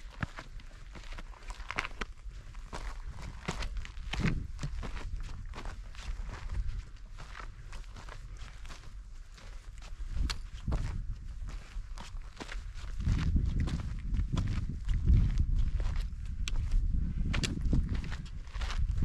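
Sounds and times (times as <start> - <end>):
footsteps on trail: 0.0 - 19.0
low microphone rumble: 12.7 - 19.0.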